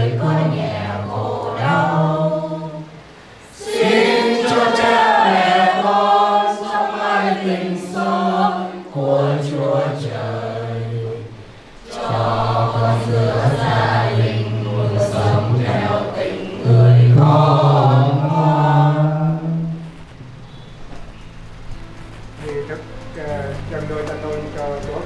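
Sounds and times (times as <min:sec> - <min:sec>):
group singing a prayer chant: 0:00.0 - 0:20.0.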